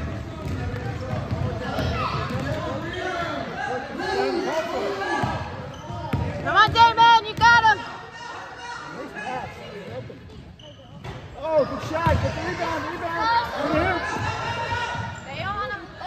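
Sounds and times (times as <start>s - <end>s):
voices echoing in a hall: 0.0s - 16.0s.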